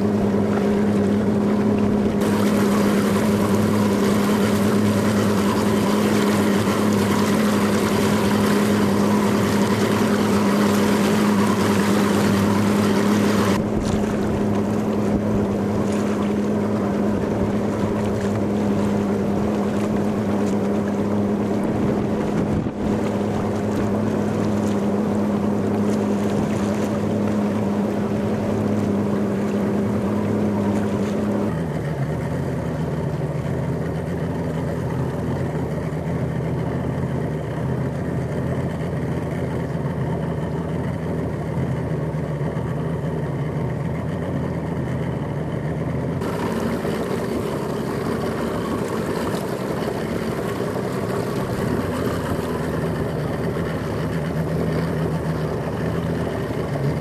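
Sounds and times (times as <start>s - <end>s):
motorboat engine running: 0.0s - 57.0s
water noise: 0.0s - 57.0s
wind: 0.0s - 57.0s.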